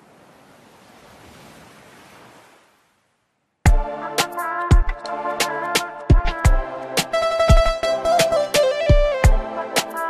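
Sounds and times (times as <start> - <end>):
faint sea waves on shore: 0.0 - 4.4.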